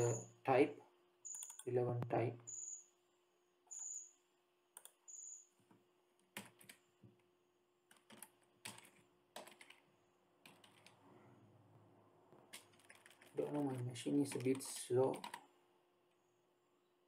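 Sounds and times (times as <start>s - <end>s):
faint computer keyboard typing: 1.3s - 2.7s, 4.7s - 11.0s, 12.3s - 15.5s.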